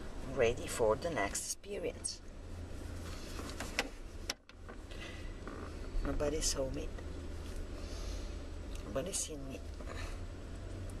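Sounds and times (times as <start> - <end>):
steady low hum: 0.0 - 11.0
rustling inside car: 0.2 - 8.1.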